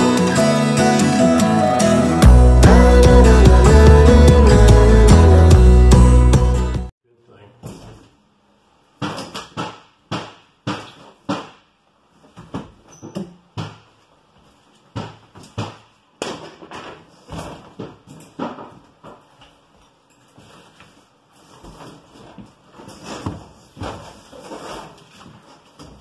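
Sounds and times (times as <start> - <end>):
wall covering scraping and tearing: 20.3 - 26.0.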